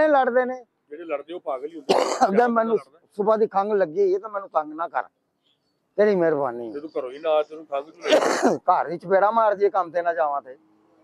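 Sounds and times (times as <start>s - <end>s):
man talking: 0.0s - 5.2s, 6.0s - 10.7s
man clearing throat: 1.9s - 2.4s, 8.0s - 8.6s.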